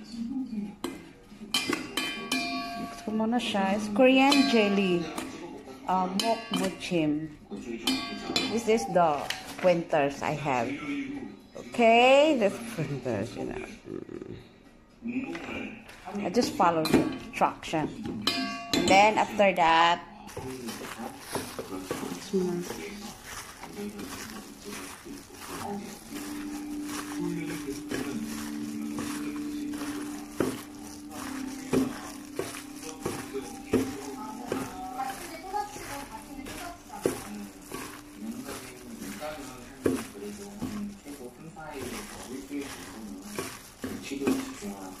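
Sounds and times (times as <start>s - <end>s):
faint murmur of voices: 0.0s - 45.0s
salad tossed in steel bowl: 20.3s - 45.0s.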